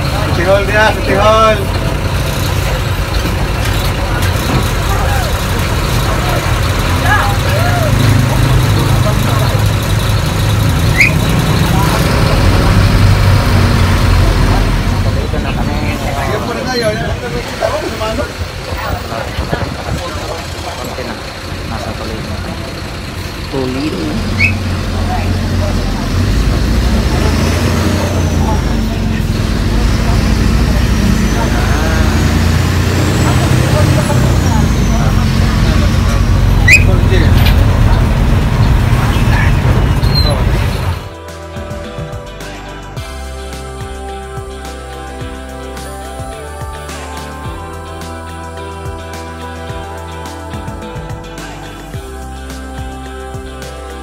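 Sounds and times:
bus engine running: 0:00.0 - 0:54.0
road and rattle noise: 0:00.0 - 0:54.0.

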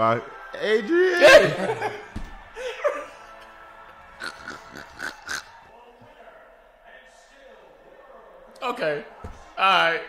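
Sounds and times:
man laughing breathily: 0:02.6 - 0:03.1.

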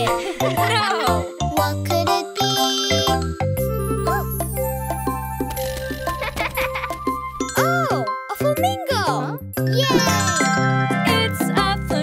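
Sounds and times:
children's song music: 0:00.0 - 0:12.0
children calling in sing-song tones: 0:02.0 - 0:04.3
tinkling jingle: 0:07.1 - 0:12.0.

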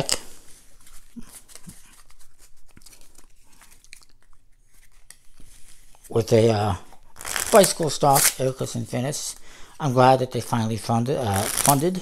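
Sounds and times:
playing cards rustling and clicking: 0:00.0 - 0:06.1, 0:07.2 - 0:08.6, 0:11.2 - 0:12.0.

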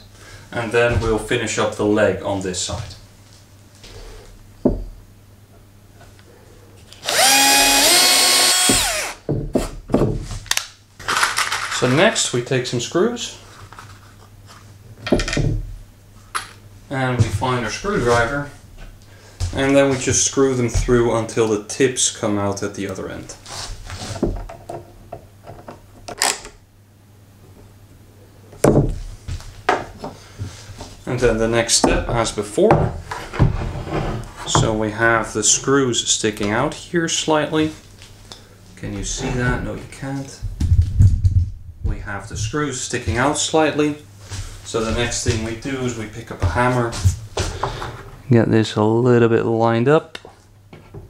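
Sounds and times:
cordless drill drilling into wood: 0:07.0 - 0:09.2
screws creaking into plywood: 0:07.0 - 0:09.2.

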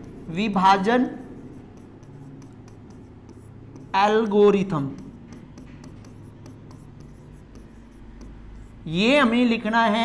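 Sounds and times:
pen scratching on a board: 0:00.0 - 0:09.4.

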